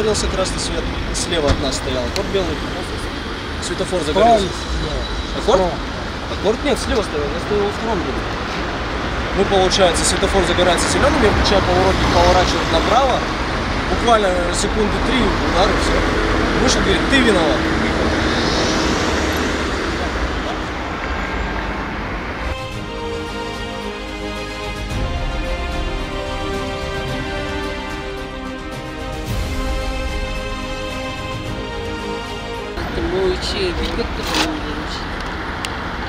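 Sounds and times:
road traffic rushing: 0.0 - 36.0.

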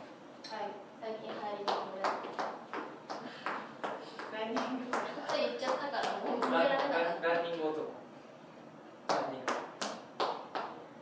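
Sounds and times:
hand claps: 9.1 - 10.8.

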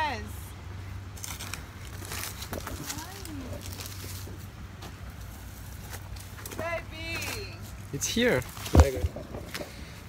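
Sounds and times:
footsteps on a trail: 1.2 - 10.0.

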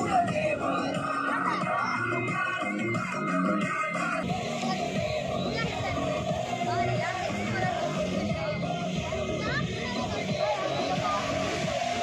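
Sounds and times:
children chattering and calling out: 0.0 - 12.0
music playing: 0.0 - 12.0.

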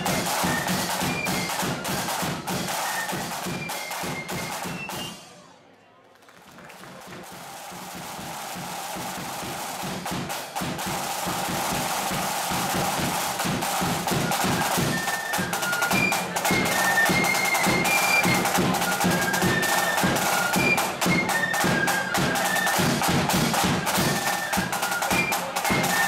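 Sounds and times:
drum roll: 0.0 - 5.4, 6.7 - 26.0
flutes playing melody: 0.0 - 5.5, 7.3 - 26.0.

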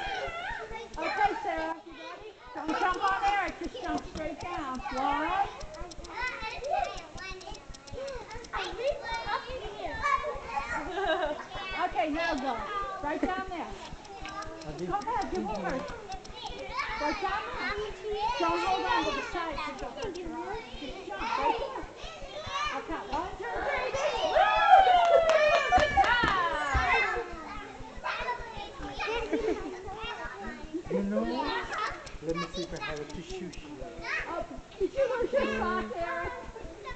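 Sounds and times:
young children chattering: 0.0 - 24.6, 25.6 - 36.9
child laughing: 10.0 - 11.7, 28.9 - 29.8.

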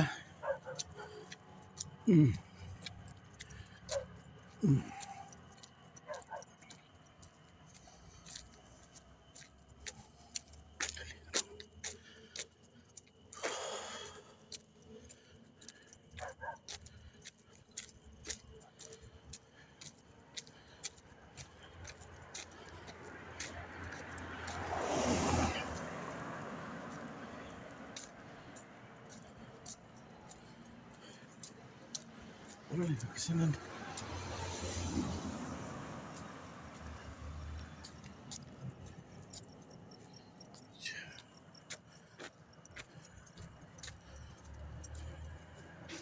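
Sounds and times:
vehicle passing: 0.0 - 46.0.

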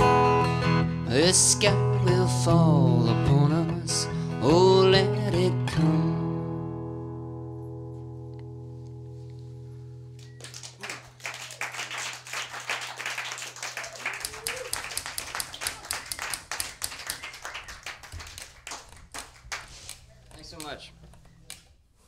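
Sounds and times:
acoustic guitar chord: 0.0 - 10.2
small audience clapping: 10.2 - 20.8.

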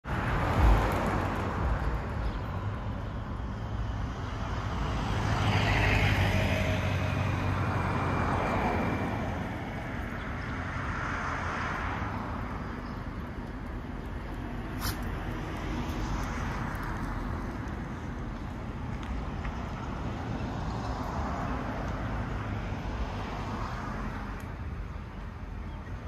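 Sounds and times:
passing cars: 0.0 - 26.0.

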